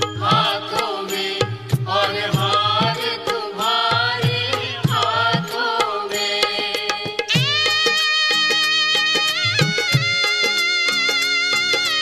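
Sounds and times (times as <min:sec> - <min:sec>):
hand drum beat: 0:00.0 - 0:10.6
person singing: 0:00.2 - 0:09.2.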